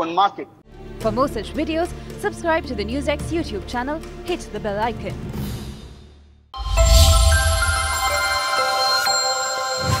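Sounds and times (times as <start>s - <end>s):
bright electronic chime: 6.6s - 10.0s.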